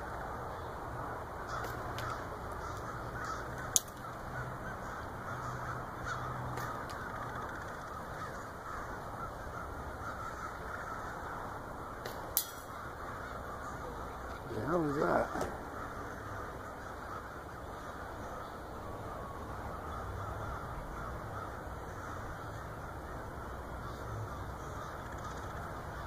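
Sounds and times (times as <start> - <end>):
crows cawing: 0.0 - 26.0
steady background noise: 0.0 - 26.0.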